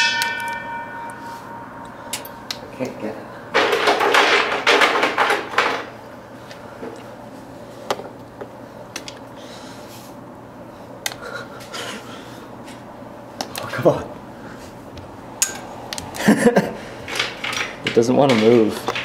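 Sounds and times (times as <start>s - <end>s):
person laughing: 11.1s - 12.2s, 16.1s - 16.9s.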